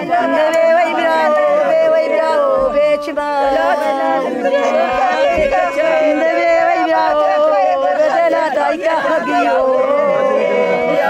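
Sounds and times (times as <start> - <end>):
women wailing a lament: 0.0 - 11.0.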